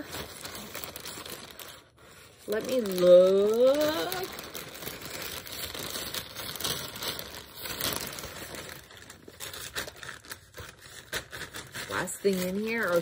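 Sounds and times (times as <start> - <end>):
plastic mailer bag crinkling: 0.0 - 13.0.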